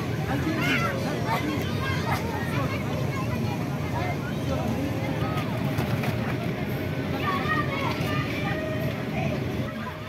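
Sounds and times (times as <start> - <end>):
children chattering: 0.0 - 10.0.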